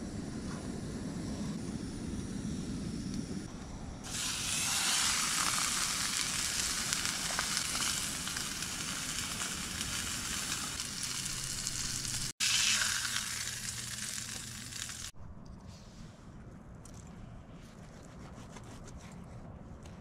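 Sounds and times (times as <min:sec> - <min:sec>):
steak sizzling: 0:04.1 - 0:15.2.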